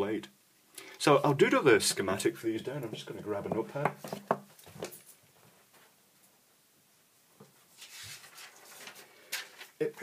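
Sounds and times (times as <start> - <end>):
paper notepad rustling: 7.8 - 10.0.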